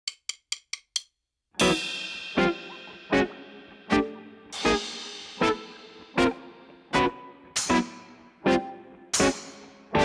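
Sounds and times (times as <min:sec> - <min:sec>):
drumstick clicks: 0:00.1 - 0:01.2
band playing drums guitar and keyboard: 0:01.6 - 0:08.6, 0:09.2 - 0:10.0.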